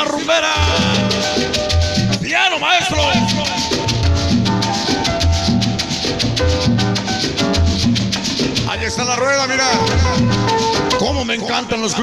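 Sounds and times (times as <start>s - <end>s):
salsa music over sound system: 0.0s - 12.0s.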